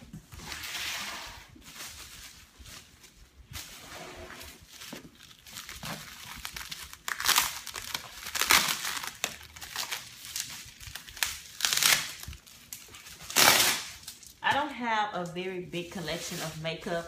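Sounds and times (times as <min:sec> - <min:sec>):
bubble wrap crinkling: 0:01.4 - 0:03.8, 0:04.4 - 0:14.7, 0:15.5 - 0:17.0.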